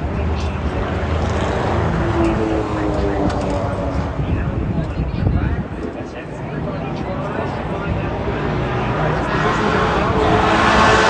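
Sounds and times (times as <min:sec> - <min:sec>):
distant race car engines rumbling: 0:00.0 - 0:11.0.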